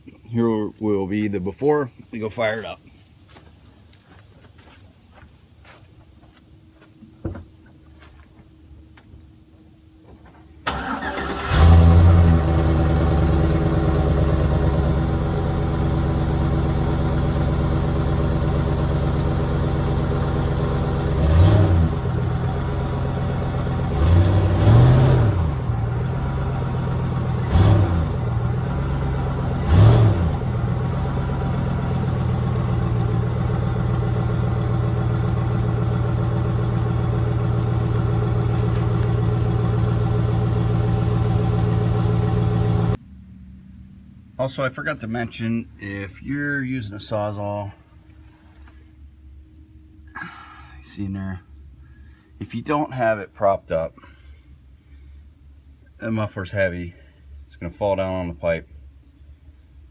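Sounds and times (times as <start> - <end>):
truck engine starting and idling: 10.0 - 47.8
engine revving: 10.7 - 43.0.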